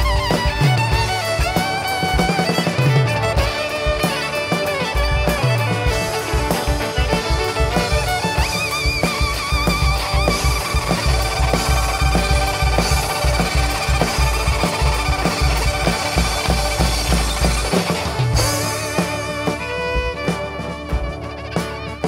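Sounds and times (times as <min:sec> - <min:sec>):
fiddle with vibrato: 0:00.0 - 0:22.0
folk-rock band playing: 0:00.0 - 0:22.0.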